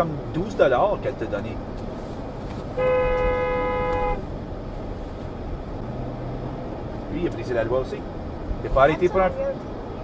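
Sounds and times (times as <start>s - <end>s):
road noise rumble: 0.0s - 10.0s
car horn honk: 2.8s - 4.3s.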